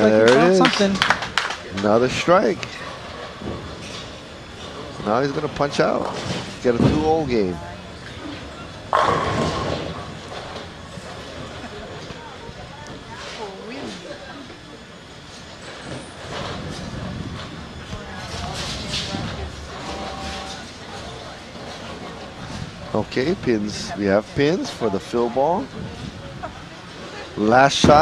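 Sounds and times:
spectators chattering: 0.0s - 3.4s, 4.1s - 28.0s
bowling ball crashing into pins: 8.9s - 10.7s.

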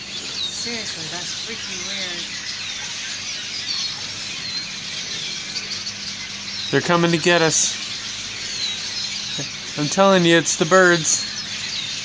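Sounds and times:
flock of birds chirping: 0.0s - 12.0s.

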